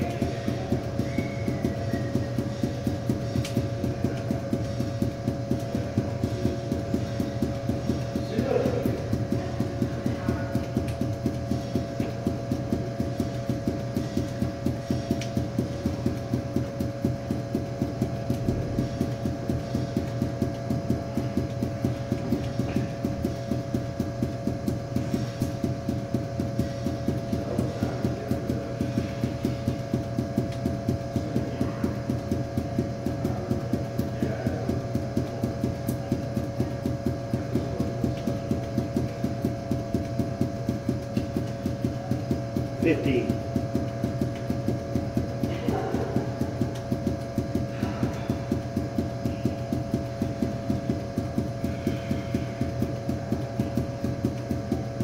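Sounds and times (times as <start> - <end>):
balls bouncing on hard floor: 0.0 - 55.0
steady hum: 0.0 - 55.0.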